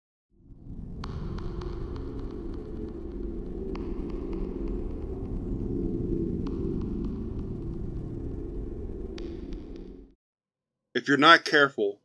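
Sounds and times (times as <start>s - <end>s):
static clicks and crackles: 0.6s - 10.2s.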